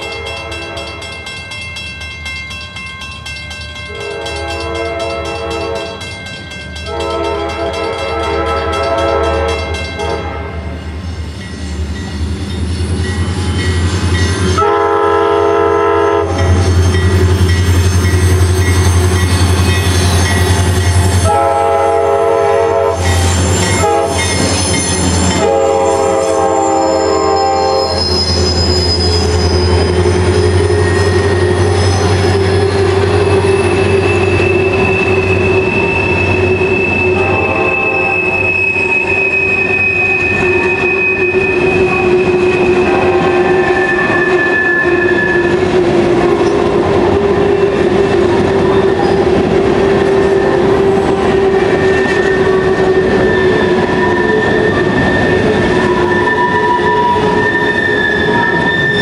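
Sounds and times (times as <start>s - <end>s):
locomotive rumble: 3.4s - 59.0s
locomotive horn blasts: 3.9s - 6.0s, 6.8s - 10.6s, 14.5s - 16.6s, 21.2s - 24.4s, 25.3s - 28.2s, 32.1s - 45.5s
train wheel squeal: 7.9s - 59.0s.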